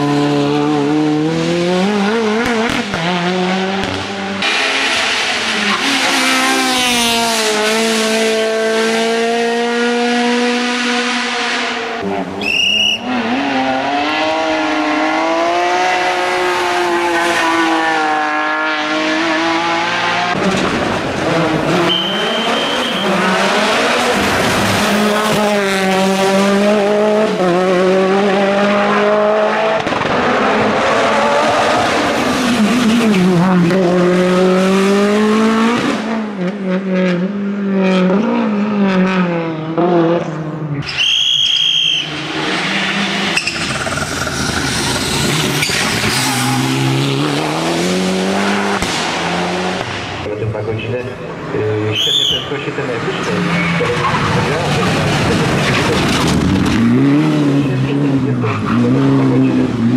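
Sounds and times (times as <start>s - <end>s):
racing car engines revving: 0.0s - 59.9s.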